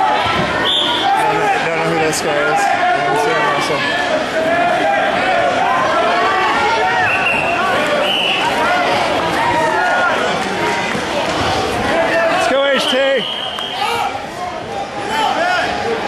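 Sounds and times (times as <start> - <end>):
crowd voices and shouts: 0.0 - 16.0.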